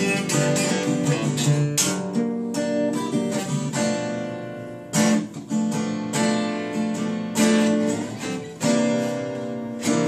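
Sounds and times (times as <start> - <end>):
acoustic guitars strumming chords: 0.0 - 10.0.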